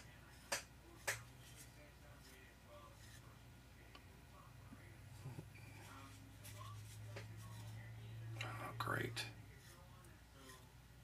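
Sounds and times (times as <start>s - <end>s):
low steady hum: 0.0s - 11.0s
man whispering: 7.6s - 9.8s.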